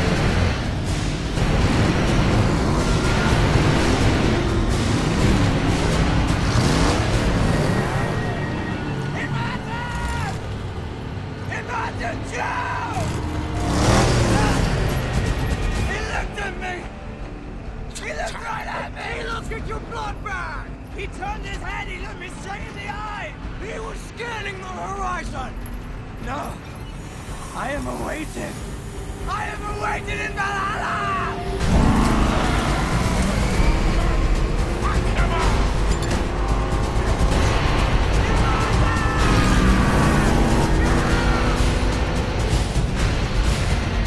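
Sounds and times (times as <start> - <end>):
car and truck engines running: 0.0 - 44.0
film score music: 0.0 - 44.0
road noise: 0.0 - 44.0
people shouting: 6.5 - 10.6, 11.5 - 14.9, 29.3 - 42.3.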